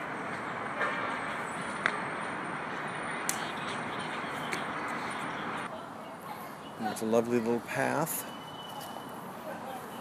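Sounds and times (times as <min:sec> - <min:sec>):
hiss-like park ambience: 0:00.0 - 0:10.0.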